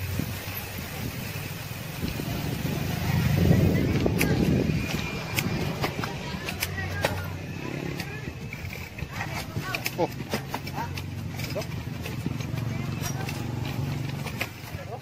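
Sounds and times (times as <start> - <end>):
vehicle engine running: 0.0 - 15.0
vehicle jolting on dirt road: 0.0 - 15.0.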